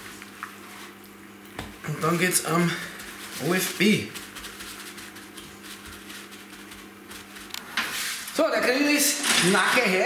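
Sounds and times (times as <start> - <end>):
steady low hum: 0.0 - 8.8
paper towel rustling: 1.9 - 8.7.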